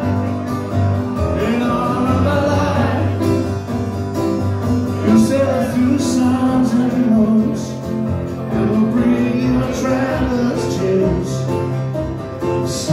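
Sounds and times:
acoustic guitars playing: 0:00.0 - 0:12.9
person singing: 0:01.1 - 0:03.4, 0:04.9 - 0:11.7.

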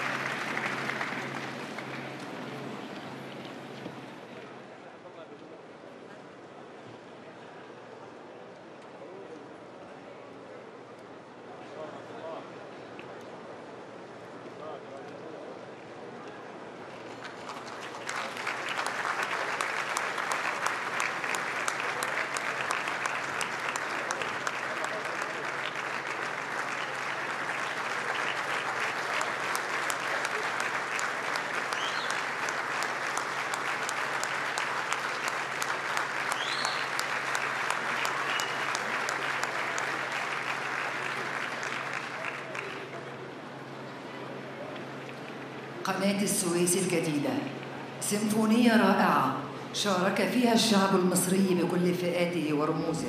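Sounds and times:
large audience applauding: 0:00.0 - 0:04.2, 0:17.0 - 0:43.4.

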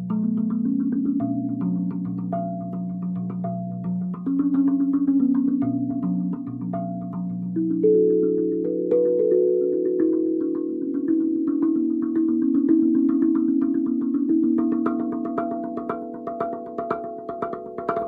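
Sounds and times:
steel tongue drum notes: 0:00.0 - 0:18.0.

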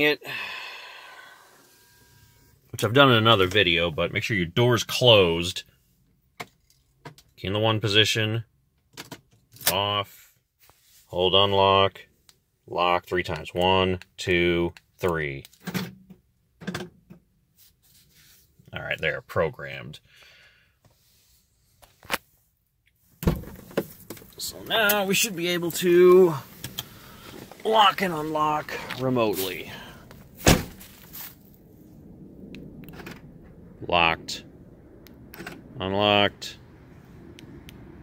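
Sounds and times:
car door thump: 0:23.2 - 0:23.9, 0:30.4 - 0:31.0.

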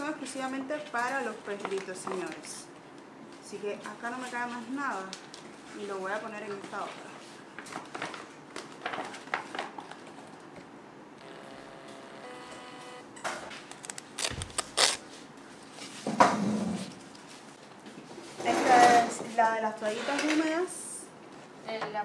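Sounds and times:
paper clicks and crinkles: 0:00.9 - 0:02.6, 0:07.5 - 0:10.6, 0:13.5 - 0:15.2
thermal printer whirring: 0:11.2 - 0:14.6
paper bag rustling: 0:13.5 - 0:15.9.

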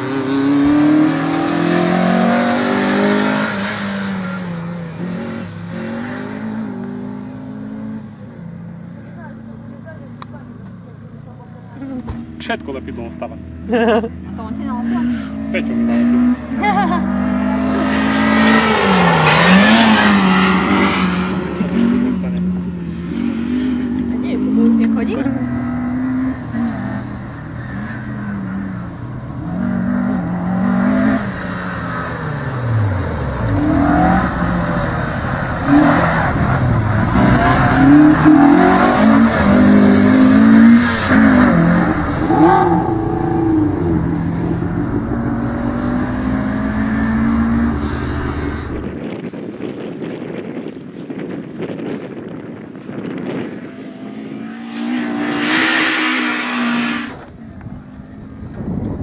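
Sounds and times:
car engine revving: 0:00.0 - 0:49.2, 0:53.4 - 0:58.5.

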